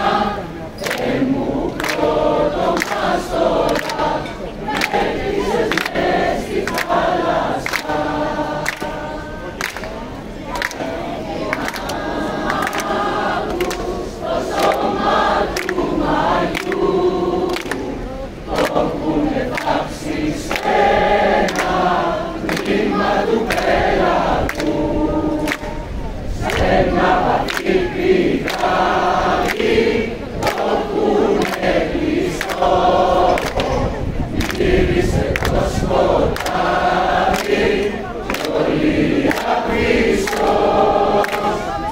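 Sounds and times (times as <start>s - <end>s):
crowd singing in chorus: 0.0s - 41.9s
sharp claps: 0.8s - 4.1s, 4.7s - 9.0s, 9.6s - 10.9s, 11.5s - 16.9s, 17.5s - 17.9s, 18.5s - 18.9s, 19.5s - 19.8s, 20.4s - 23.8s, 24.5s - 24.8s, 25.4s - 25.8s, 26.4s - 27.8s, 28.4s - 29.8s, 30.4s - 33.8s, 34.4s - 34.7s, 35.3s - 35.7s, 36.3s - 41.6s.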